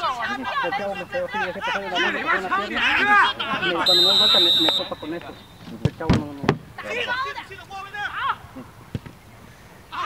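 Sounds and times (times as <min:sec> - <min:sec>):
players shouting: 0:00.0 - 0:05.7, 0:06.8 - 0:08.5
referee's whistle blast: 0:03.8 - 0:05.7.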